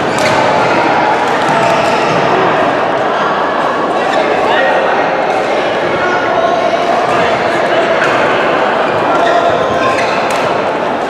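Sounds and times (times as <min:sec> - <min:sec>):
rackets hitting shuttlecocks: 0:00.0 - 0:01.9, 0:09.0 - 0:10.8
din of voices: 0:00.0 - 0:11.0.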